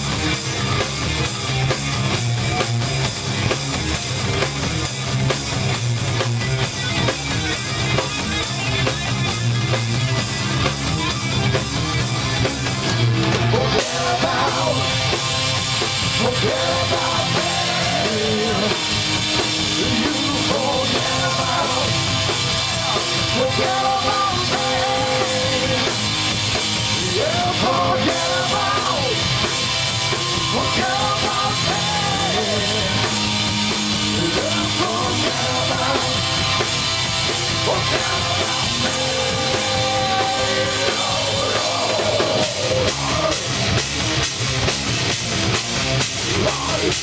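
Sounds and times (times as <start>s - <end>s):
heavy rock band playing: 0.0s - 47.0s
pounding drum kit: 0.0s - 47.0s.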